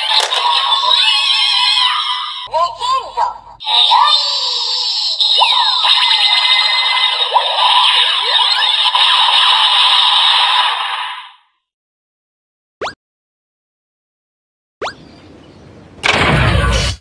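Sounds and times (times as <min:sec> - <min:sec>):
toy voice call: 0:00.0 - 0:11.4.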